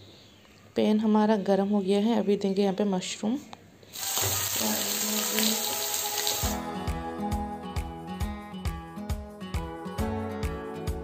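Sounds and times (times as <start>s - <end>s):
mushrooms sizzling in oil: 3.9s - 6.6s
background music with steady beat: 5.7s - 11.0s.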